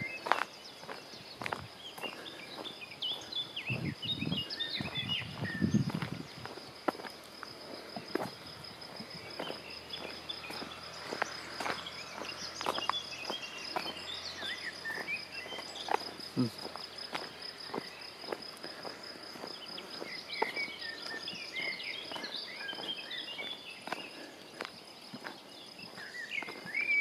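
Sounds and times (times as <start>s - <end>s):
birds chirping: 0.0s - 27.0s
footsteps on pavement: 0.0s - 27.0s.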